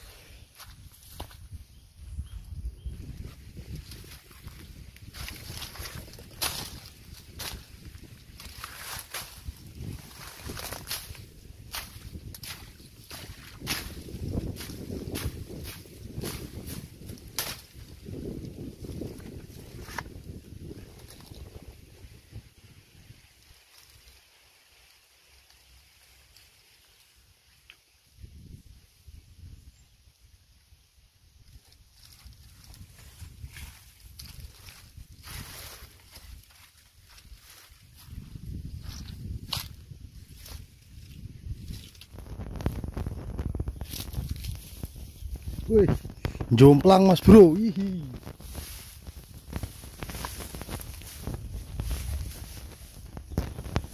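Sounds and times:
wind rumble on microphone: 0.0 - 24.2, 28.1 - 53.9
grass and reeds rustling: 0.0 - 53.9.

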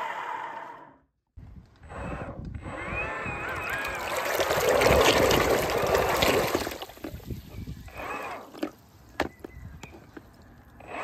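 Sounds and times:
thruster churning water: 3.4 - 8.7
water sloshing in tub: 3.7 - 7.3.

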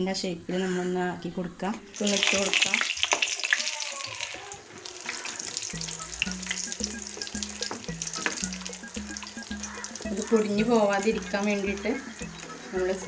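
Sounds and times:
food sizzling in hot oil: 1.9 - 13.0
background music with bass line: 5.8 - 13.0.

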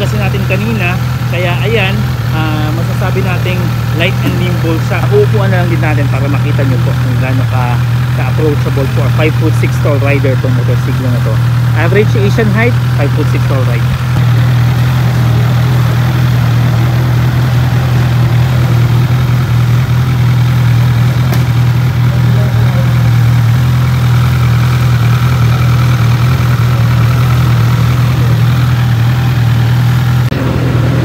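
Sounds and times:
motorcycle engine idling: 0.0 - 31.0.

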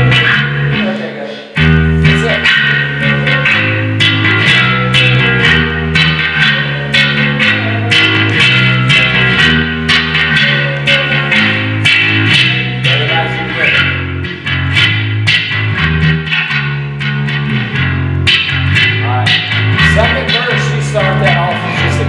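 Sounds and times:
electric bass riff: 0.0 - 22.0.

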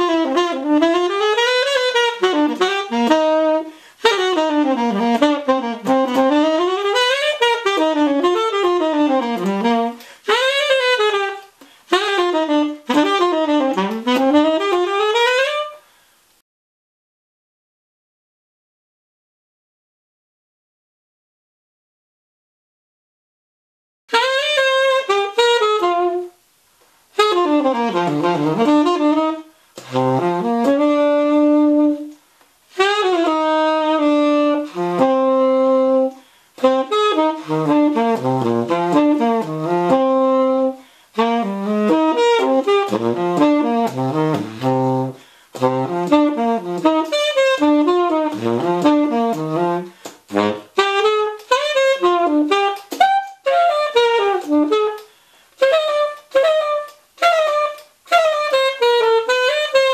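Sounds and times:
solo tenor saxophone jazz: 0.0 - 16.4, 24.1 - 59.9.

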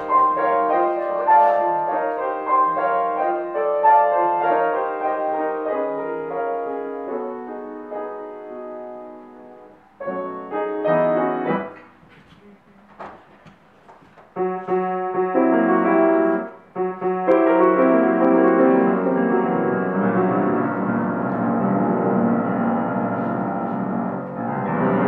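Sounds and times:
grand piano playing: 0.0 - 12.0, 14.3 - 25.0.

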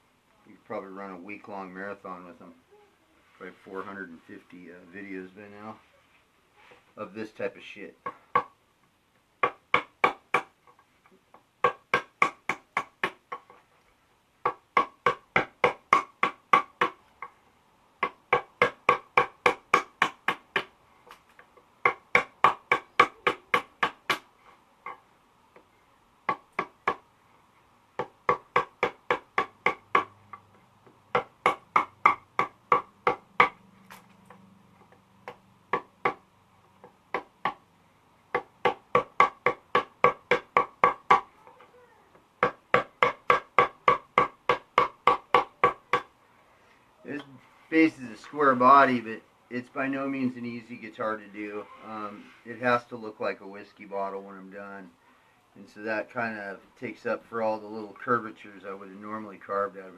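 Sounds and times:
mallet tapping wood chisel: 8.0 - 8.5, 9.4 - 10.6, 11.3 - 13.6, 14.4 - 17.4, 18.0 - 20.7, 21.8 - 24.2, 28.0 - 33.6, 34.9 - 36.2, 36.8 - 37.6, 38.3 - 41.3, 42.4 - 46.1.

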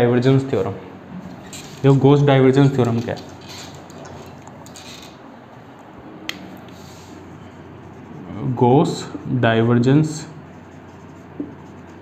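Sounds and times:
marker scratching on whiteboard: 6.8 - 12.0.

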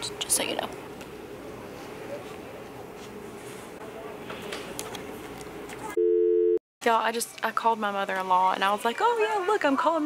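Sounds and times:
two-note telephone tone: 6.0 - 6.6.

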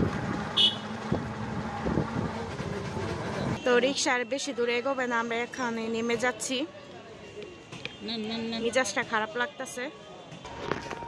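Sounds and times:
motor vehicle running: 0.0 - 3.6
street traffic: 0.0 - 11.0.

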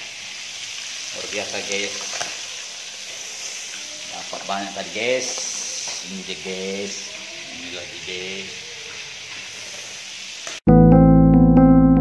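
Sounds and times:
electric piano music: 10.7 - 12.0.

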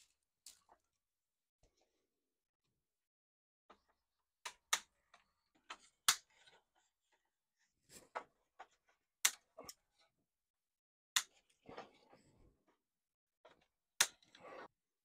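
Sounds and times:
cane snapping and clicking: 5.7 - 6.3, 9.2 - 9.8, 11.2 - 11.9, 14.0 - 14.6.

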